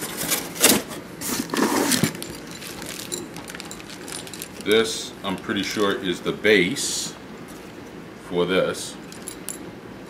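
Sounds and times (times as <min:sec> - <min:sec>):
packaging rustling: 0:00.0 - 0:06.0.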